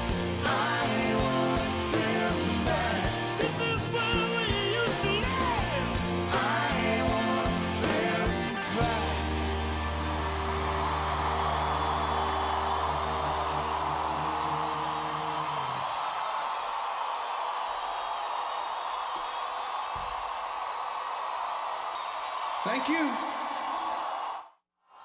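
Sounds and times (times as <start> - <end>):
crowd cheering and applause: 0.0 - 25.0.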